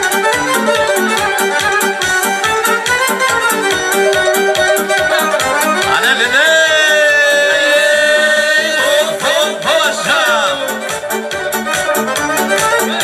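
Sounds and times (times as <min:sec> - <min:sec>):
lively folk music: 0:00.0 - 0:13.0.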